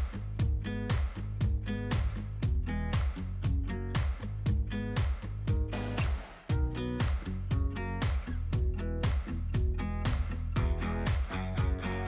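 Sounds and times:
plucked-string tune over beat: 0.0 - 12.0.

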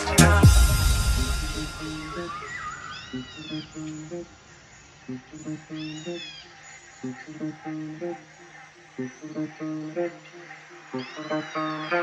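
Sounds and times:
plucked low synth notes: 0.0 - 2.4.

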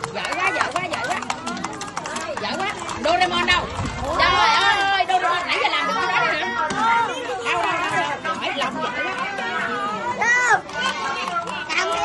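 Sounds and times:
children chattering: 0.0 - 12.0.

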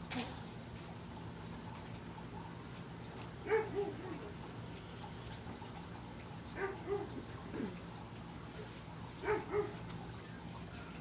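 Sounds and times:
dog barking: 3.4 - 4.3, 6.6 - 7.2, 9.2 - 9.8.

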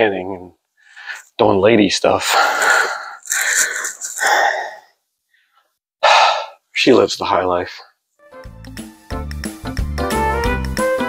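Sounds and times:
man exhaling: 6.0 - 6.6.

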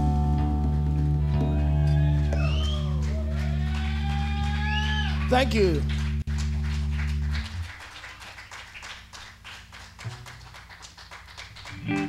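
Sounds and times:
electric bass and guitar sustaining: 0.0 - 7.8, 11.6 - 12.0.

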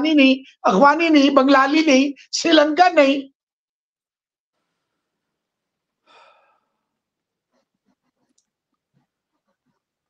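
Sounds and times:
person sighing: 6.1 - 6.6.

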